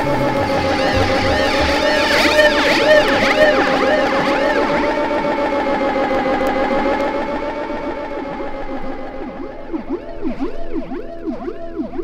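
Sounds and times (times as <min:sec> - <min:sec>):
new wave song from vinyl record: 0:00.0 - 0:11.6
electronic siren-like pitch sweeps: 0:00.0 - 0:12.0.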